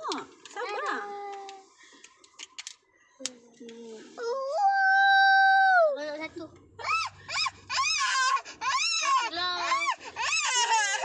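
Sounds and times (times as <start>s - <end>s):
young child crying and whining: 4.2s - 6.2s, 6.8s - 11.0s.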